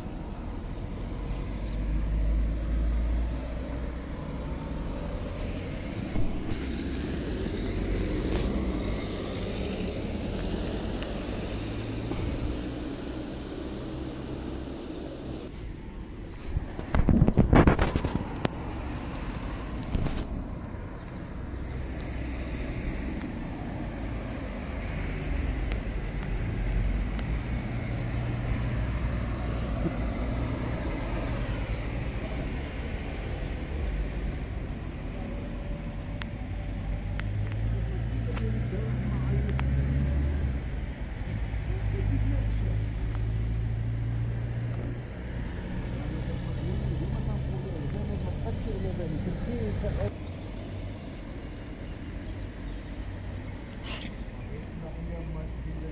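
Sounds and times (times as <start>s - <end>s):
street traffic rumble: 0.0s - 55.9s.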